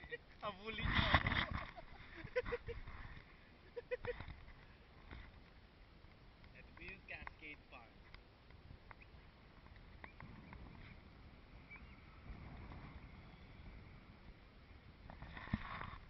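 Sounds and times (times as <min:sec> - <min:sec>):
wind rumble on microphone: 0:00.0 - 0:06.9, 0:07.8 - 0:16.0.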